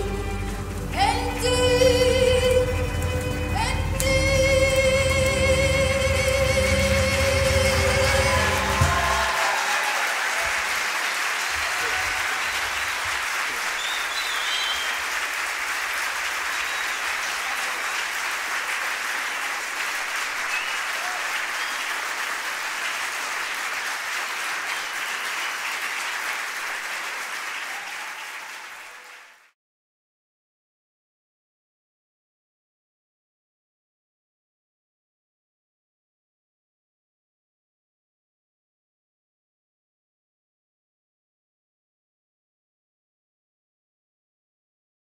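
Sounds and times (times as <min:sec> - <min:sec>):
singing with instruments: 0:00.0 - 0:09.7
audience applauding: 0:04.8 - 0:29.6.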